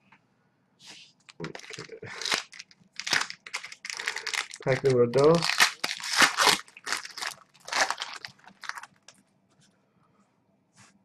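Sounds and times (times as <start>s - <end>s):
foil wrapper tearing and crackling: 1.3s - 9.1s.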